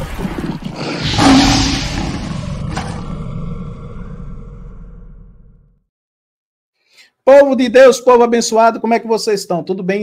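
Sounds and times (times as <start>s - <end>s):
lion roaring: 0.3s - 5.7s.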